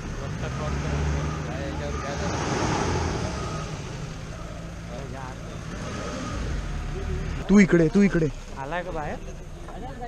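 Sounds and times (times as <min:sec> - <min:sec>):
faint voices: 0:00.0 - 0:10.0
jeep engine humming: 0:00.0 - 0:10.0
wind and tyre noise: 0:00.0 - 0:10.0.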